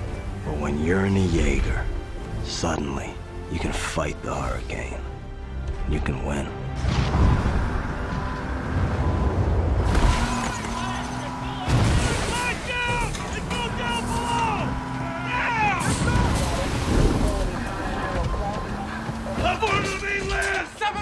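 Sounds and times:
faint music: 0:00.0 - 0:21.0
wind rumbling: 0:06.9 - 0:19.7
heavy waves crashing: 0:08.7 - 0:20.1
men shouting indistinctly: 0:10.4 - 0:21.0.

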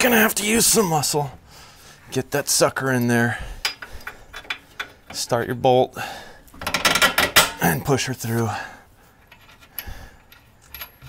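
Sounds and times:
metallic clinks of bolt and nut: 0:09.2 - 0:11.0.

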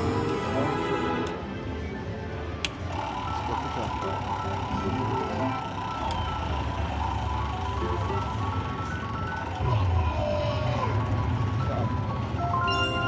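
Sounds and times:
low casino hum: 0:00.0 - 0:13.0
bonus wheel spinning: 0:02.7 - 0:13.0
slot machine electronic music: 0:02.8 - 0:13.0
short repeating electronic notes: 0:02.9 - 0:13.0.

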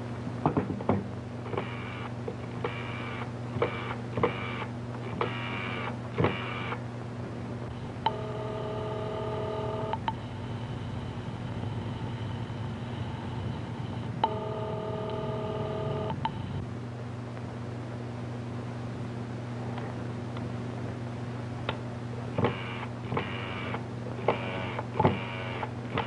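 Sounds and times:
steady low hum: 0:00.0 - 0:26.0
short buzzy telephone tones: 0:08.1 - 0:10.0, 0:14.2 - 0:16.6
telephone ringing tone: 0:08.1 - 0:10.0, 0:14.2 - 0:16.6
click: 0:09.9 - 0:10.2, 0:16.1 - 0:16.4.

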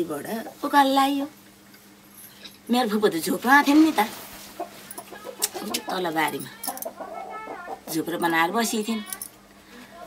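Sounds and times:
woman speaking: 0:00.0 - 0:01.4, 0:02.7 - 0:04.3, 0:05.0 - 0:10.0
chicken clucking: 0:04.4 - 0:08.0.

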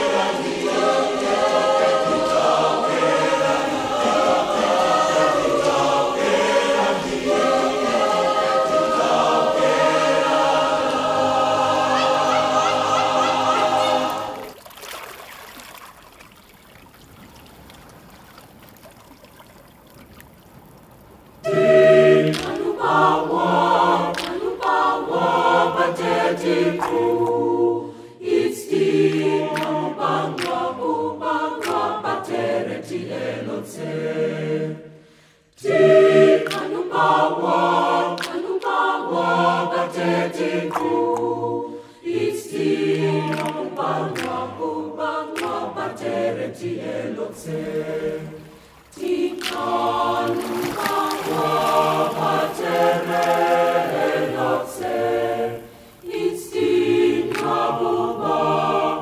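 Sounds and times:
choir singing a cappella: 0:00.0 - 0:14.6, 0:21.4 - 0:59.0.

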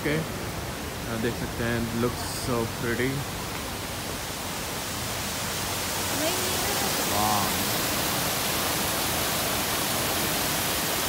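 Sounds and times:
water rushing from small waterfalls: 0:00.0 - 0:11.0.

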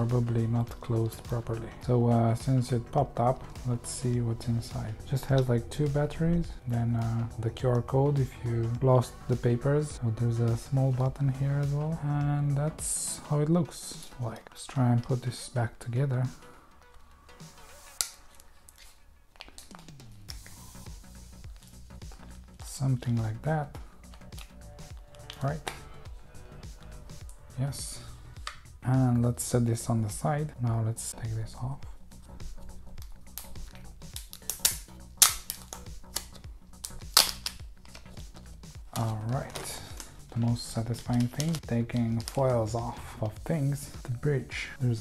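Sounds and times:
quiet background music: 0:00.0 - 0:45.0
plastic film crackling as peeled: 0:17.9 - 0:20.8, 0:24.0 - 0:25.5, 0:33.0 - 0:43.4.

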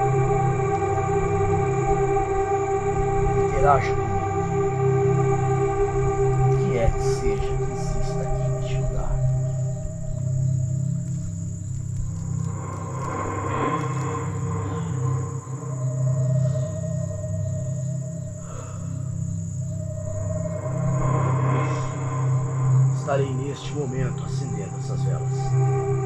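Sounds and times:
crickets trilling: 0:00.0 - 0:26.0
dark ambient drone music: 0:00.0 - 0:26.0.

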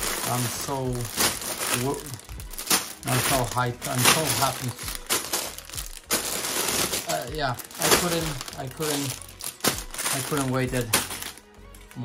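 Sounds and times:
plastic bags crinkling: 0:00.0 - 0:11.5.

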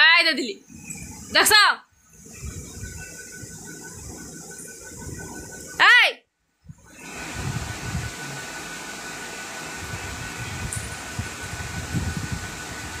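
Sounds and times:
fan whirring: 0:00.0 - 0:13.0.

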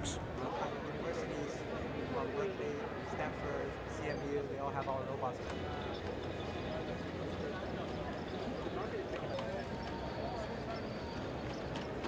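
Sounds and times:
indistinct crowd chatter: 0:00.0 - 0:12.0.

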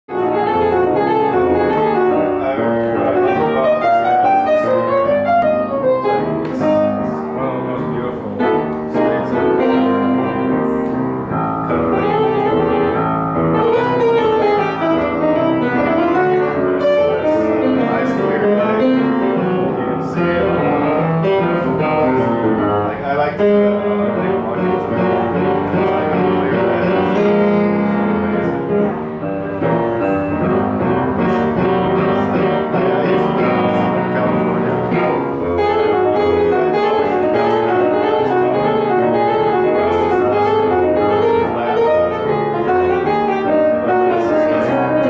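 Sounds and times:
grand piano playing: 0:00.0 - 0:45.0.

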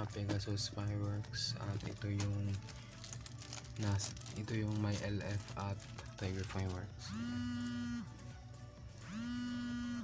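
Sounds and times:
mobile phone ringing: 0:07.1 - 0:08.1.

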